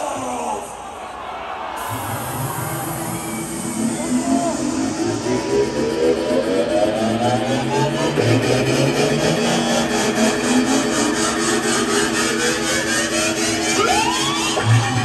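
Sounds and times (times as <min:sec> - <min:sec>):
electronic bass music: 0:01.8 - 0:15.0.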